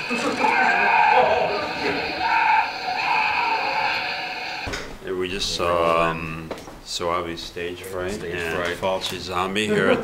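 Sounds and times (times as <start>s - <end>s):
horror film soundtrack: 0.0s - 4.7s.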